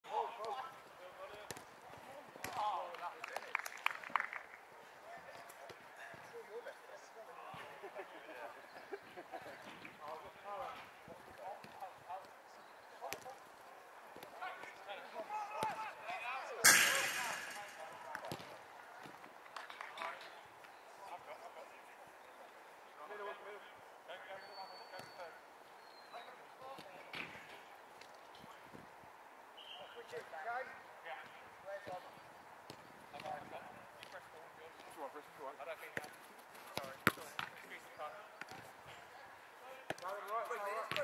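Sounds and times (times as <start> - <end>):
ball crashing into metal fence: 16.6 - 18.1.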